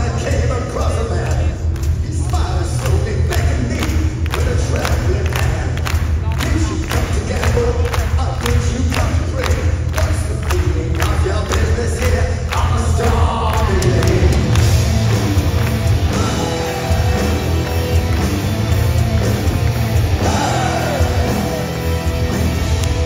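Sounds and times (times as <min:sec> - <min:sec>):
drums beating: 0:00.0 - 0:23.0
heavy metal band playing live: 0:00.0 - 0:23.0
audience cheering: 0:13.1 - 0:23.0.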